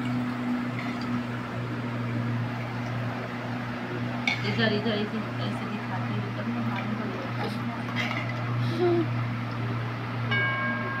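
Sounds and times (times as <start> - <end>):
continuous low hum: 0.0 - 11.0
bright metallic bell-like ring: 10.3 - 11.0.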